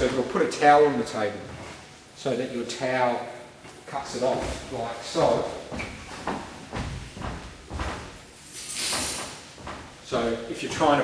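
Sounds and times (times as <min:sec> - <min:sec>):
footsteps on wooden floor: 0:03.6 - 0:10.3.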